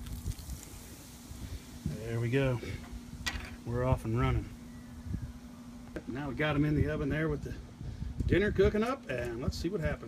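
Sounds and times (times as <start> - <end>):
faint steady hum: 0.0 - 10.0
wind buffeting microphone: 0.0 - 10.0.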